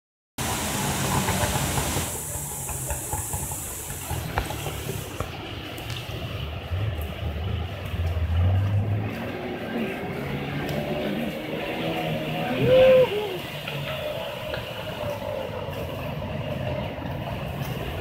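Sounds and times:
river rapid rushing water: 0.4 - 18.0.

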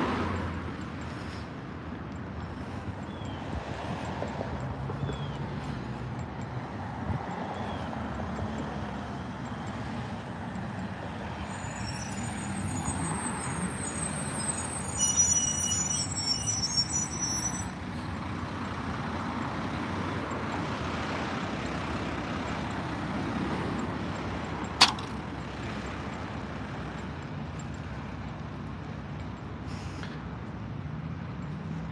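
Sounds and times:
road traffic passing: 0.0 - 31.9
high-pitched squeal: 11.2 - 18.1
garbage truck passing: 11.4 - 26.9
sharp click: 24.7 - 25.2.

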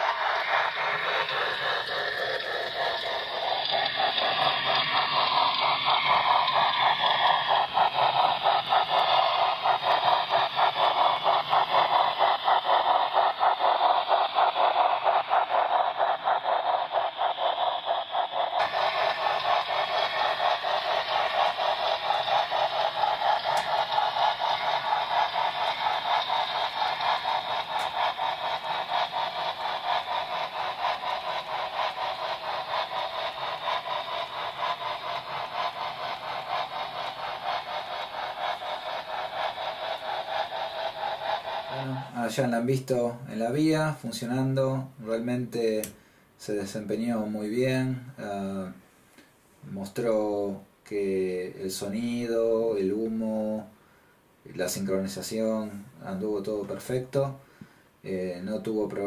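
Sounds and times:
model steam locomotive chuffs: 0.0 - 59.0.

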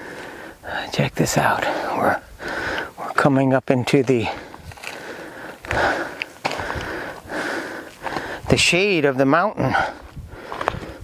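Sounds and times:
man breathing heavily: 0.0 - 0.9, 1.6 - 3.1, 4.2 - 8.6, 9.6 - 11.0.

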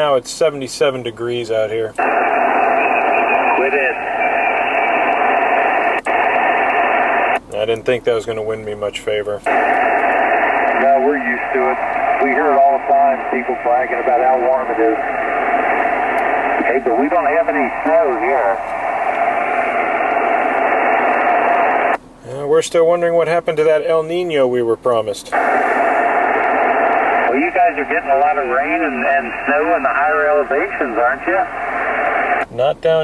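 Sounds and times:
radio static hiss: 0.0 - 33.0.

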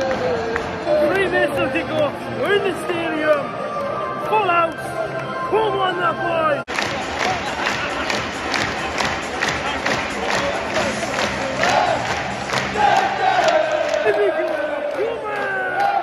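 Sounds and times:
crowd clapping in rhythm: 0.0 - 2.6, 6.7 - 16.0
crowd chanting: 11.6 - 16.0.

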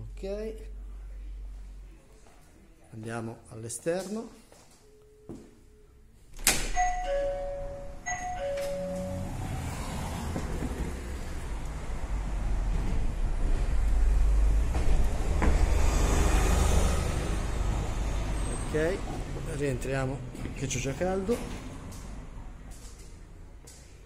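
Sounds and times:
street traffic: 6.2 - 24.0
shop door opening click: 6.3 - 9.2
two-note electronic entry chime: 6.8 - 9.4
bus approaching rumble: 7.0 - 24.0.

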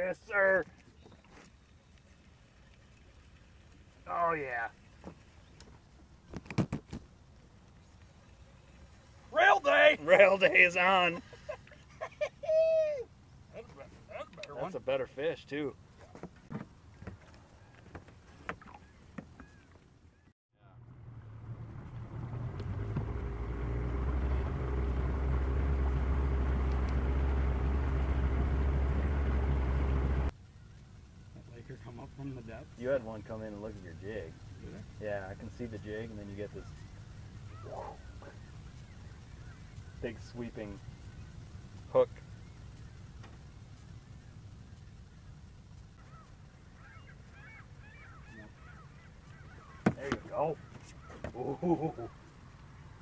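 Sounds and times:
low steady rumble: 18.8 - 53.0
outboard motor droning: 20.7 - 53.0
geese honking: 35.9 - 52.7.

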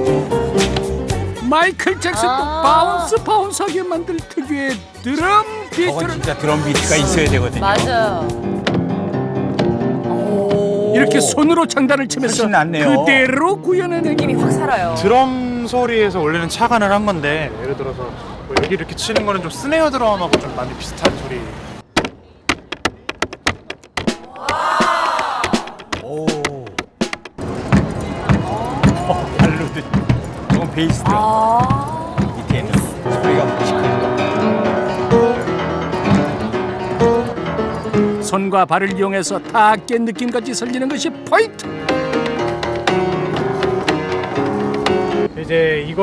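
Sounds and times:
piano playing: 0.0 - 1.5, 6.5 - 15.6, 27.3 - 45.3
voices calling out: 10.1 - 11.6.

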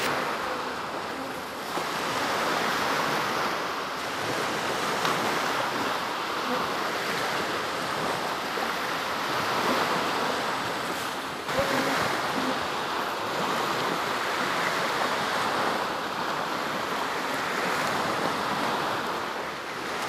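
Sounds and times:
waves breaking on sandy beach: 0.0 - 20.0.

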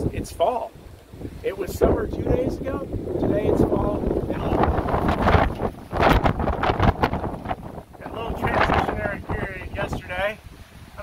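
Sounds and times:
gusty wind buffeting microphone: 0.0 - 11.0.

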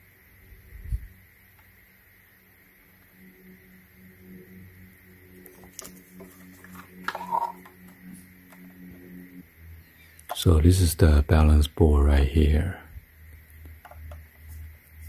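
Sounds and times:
faint low hum: 0.0 - 15.0
plastic scraping: 5.7 - 7.7.

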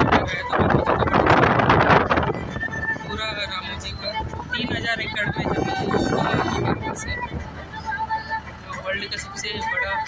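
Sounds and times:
wind and road noise of vehicle: 0.0 - 10.0.

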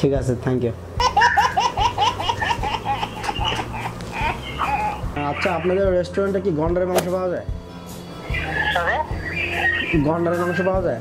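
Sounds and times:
person laughing: 1.0 - 5.6.

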